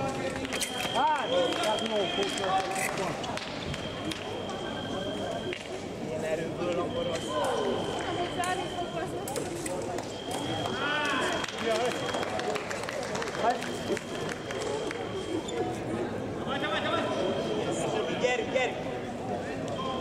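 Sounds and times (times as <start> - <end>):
indistinct voices echoing: 6.5 - 12.0.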